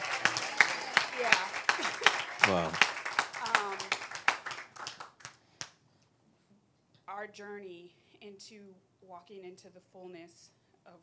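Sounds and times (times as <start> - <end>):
audience clapping: 0.0 - 5.8.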